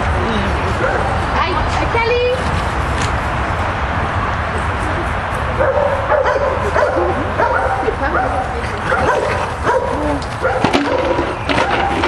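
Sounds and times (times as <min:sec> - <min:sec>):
steady low rumble: 0:00.0 - 0:10.5
dogs yipping and whining: 0:08.9 - 0:12.0.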